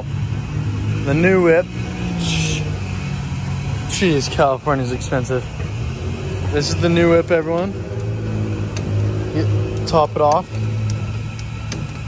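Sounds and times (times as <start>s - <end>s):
vehicle engines humming: 0.0s - 12.0s.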